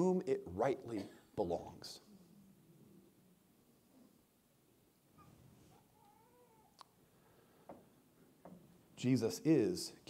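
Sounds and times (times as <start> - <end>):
faint squeak: 5.1 - 6.8.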